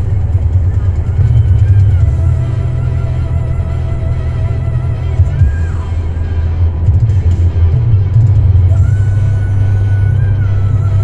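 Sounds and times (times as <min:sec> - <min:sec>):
truck engine drone: 0:00.0 - 0:11.0
tyre noise on road: 0:00.0 - 0:11.0.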